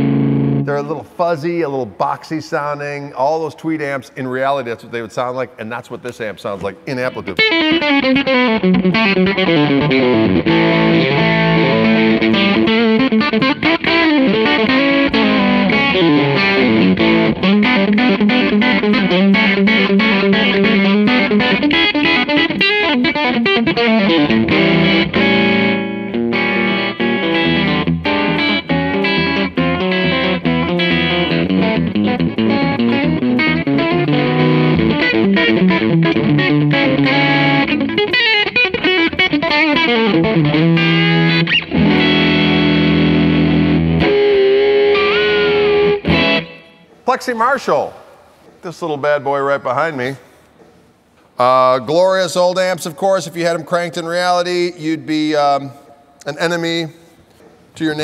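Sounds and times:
overdriven electric guitar: 0:00.0 - 0:00.7, 0:07.4 - 0:47.0.

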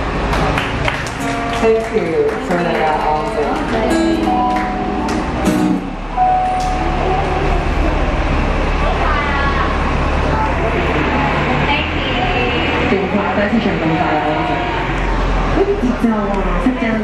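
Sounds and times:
people talking: 0:00.4 - 0:17.0.

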